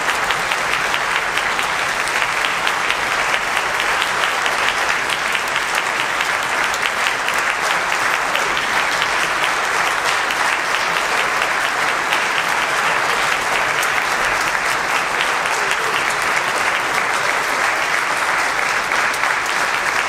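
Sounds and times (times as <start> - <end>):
audience applauding: 0.0 - 20.0.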